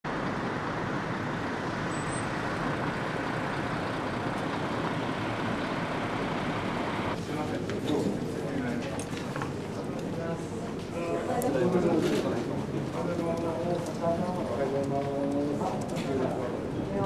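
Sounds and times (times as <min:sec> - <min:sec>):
city road traffic hum: 0:00.0 - 0:11.0.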